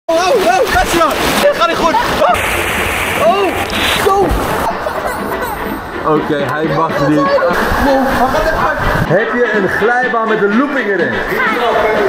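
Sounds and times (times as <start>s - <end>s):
rushing splashing water: 0.1s - 6.8s.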